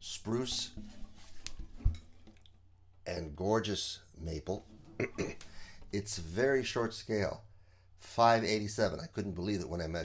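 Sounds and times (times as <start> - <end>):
guitar handling noise: 0.1 - 2.7, 4.5 - 7.2.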